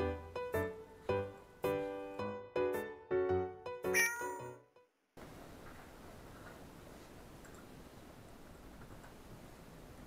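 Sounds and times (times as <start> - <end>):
cat meowing: 3.9 - 4.6.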